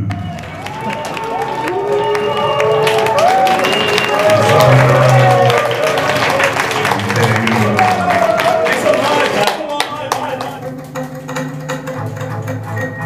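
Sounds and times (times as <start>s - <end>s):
sharp percussive taps: 9.8s - 12.9s.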